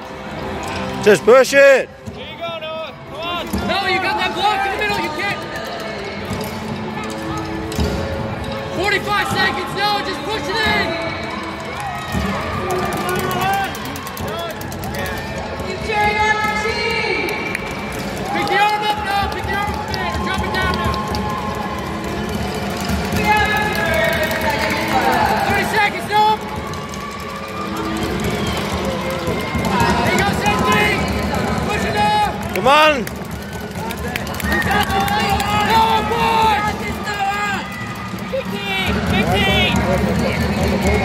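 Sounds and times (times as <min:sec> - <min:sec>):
music playing: 0:00.0 - 0:41.0.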